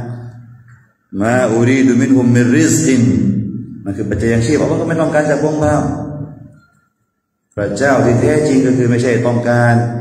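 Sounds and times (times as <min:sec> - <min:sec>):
man speaking: 0:01.1 - 0:06.6, 0:07.6 - 0:10.0.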